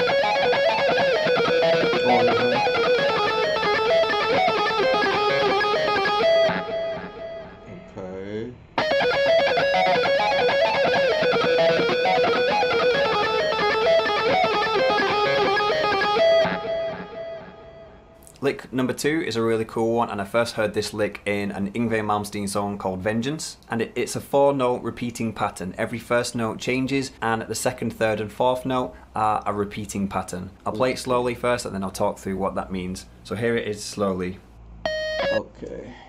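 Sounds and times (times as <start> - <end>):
fast electric guitar lick: 0.0 - 7.6, 8.8 - 18.0.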